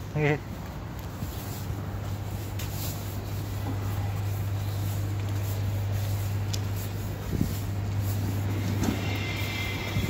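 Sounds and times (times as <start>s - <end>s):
vehicle engine humming: 0.5s - 10.0s.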